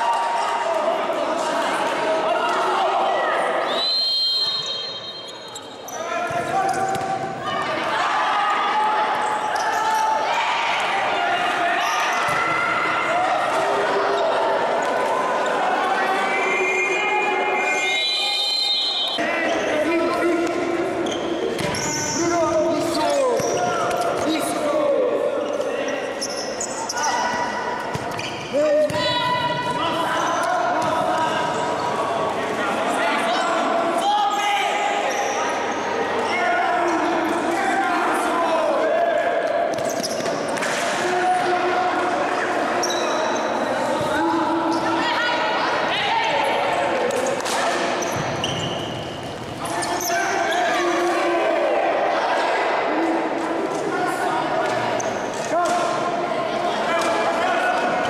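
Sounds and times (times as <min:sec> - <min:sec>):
players and spectators shouting: 0:00.0 - 0:27.9, 0:28.5 - 0:58.0
ball kicked and bouncing on court: 0:06.3 - 0:07.3, 0:21.5 - 0:21.9.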